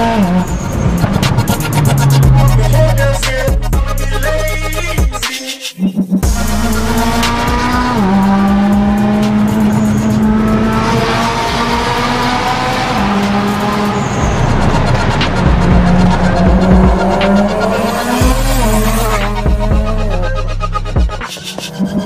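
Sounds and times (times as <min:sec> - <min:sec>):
turbocharged car engine accelerating: 0:00.0 - 0:03.9, 0:06.3 - 0:21.2.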